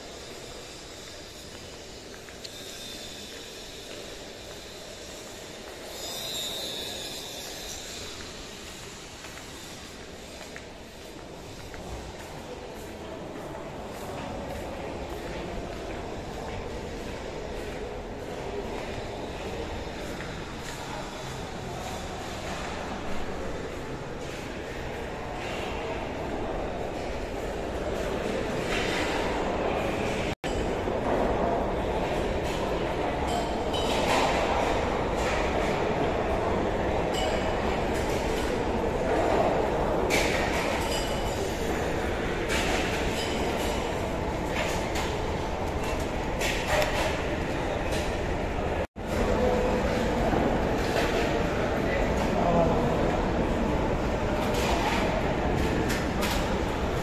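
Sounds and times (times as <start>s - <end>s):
indoor building background noise: 0.0s - 57.0s.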